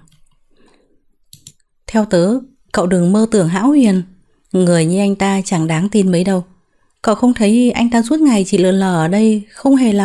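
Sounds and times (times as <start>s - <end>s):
faint breath: 0.4s - 1.1s
woman speaking: 1.9s - 10.0s.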